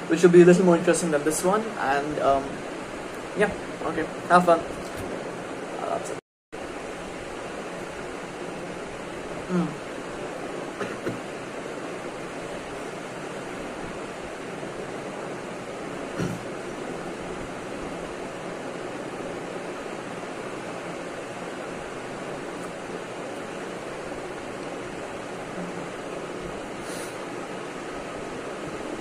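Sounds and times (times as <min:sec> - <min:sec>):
steady background hiss: 0:00.0 - 0:29.0.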